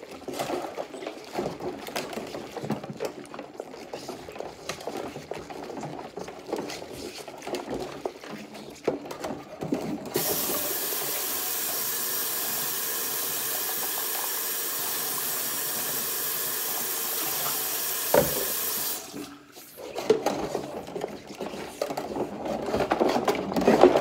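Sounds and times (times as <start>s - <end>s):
faucet running into metal sink: 10.2s - 19.3s
knock: 18.1s - 18.6s.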